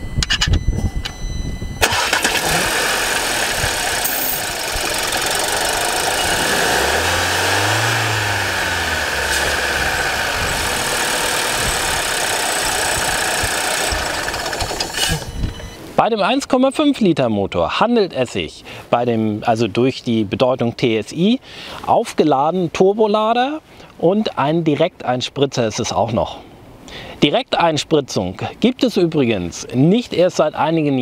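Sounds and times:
car engine cranking and idling: 0.1 - 15.8.

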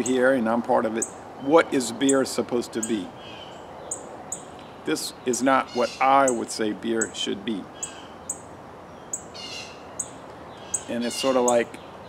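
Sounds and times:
songbird chirping: 0.0 - 12.0.

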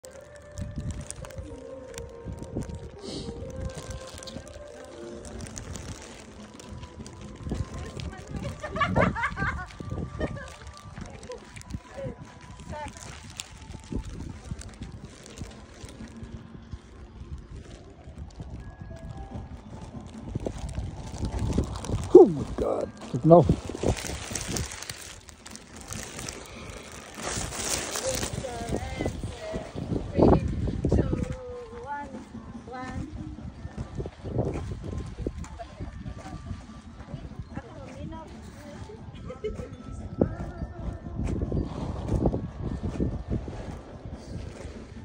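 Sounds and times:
wind buffeting microphone: 0.3 - 45.0.

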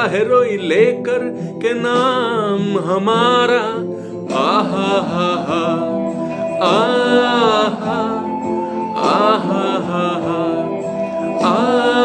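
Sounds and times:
man singing: 0.0 - 12.0.

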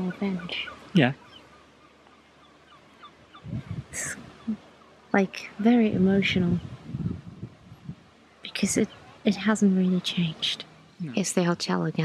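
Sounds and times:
low murmur of voice: 0.0 - 1.2, 3.5 - 4.2, 8.5 - 12.0
faint bird calls: 0.0 - 11.5.

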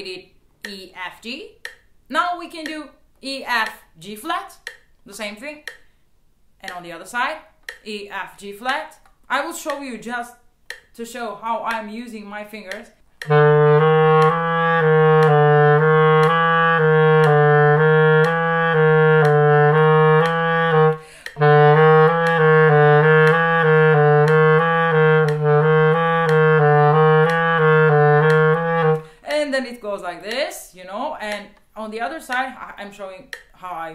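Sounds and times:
faint metronome clicks: 0.6 - 6.0, 6.6 - 29.2, 31.1 - 33.6
clarinet playing low notes: 13.2 - 29.2.

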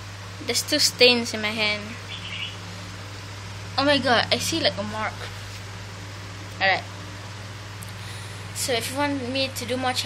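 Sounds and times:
steady low hum: 0.0 - 10.0
boy's voice: 0.4 - 2.0, 3.8 - 5.4, 6.6 - 6.9, 8.6 - 10.0
faint high chirp: 2.0 - 2.6.

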